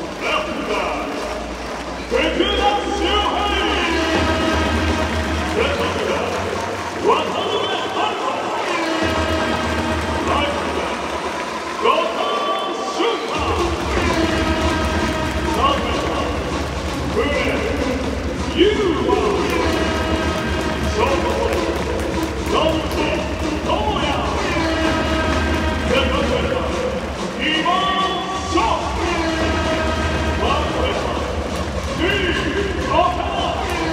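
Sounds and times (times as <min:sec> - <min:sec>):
announcer calling over loudspeaker: 0:00.0 - 0:33.9
stadium music: 0:00.0 - 0:33.9
bass line: 0:02.0 - 0:07.9, 0:13.4 - 0:33.9.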